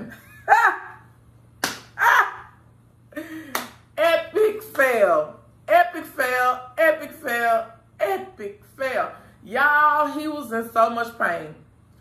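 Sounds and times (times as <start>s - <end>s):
woman laughing: 0.0s - 1.1s, 2.0s - 3.6s
hand claps: 1.6s - 2.0s, 3.5s - 3.8s.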